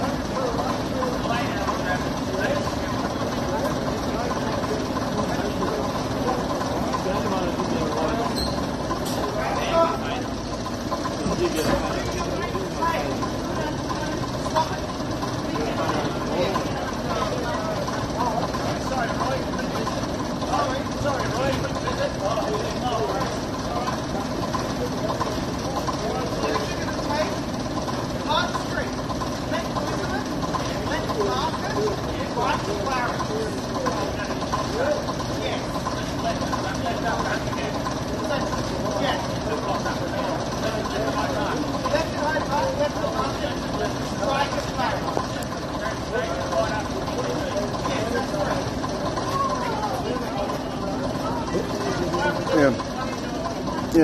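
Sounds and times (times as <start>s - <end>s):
bus diesel engine idling: 0.0s - 54.0s
indistinct chatter of people: 0.0s - 54.0s.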